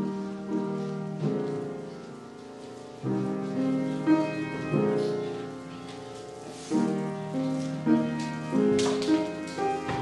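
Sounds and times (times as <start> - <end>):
piano chord ringing: 0.0 - 10.0.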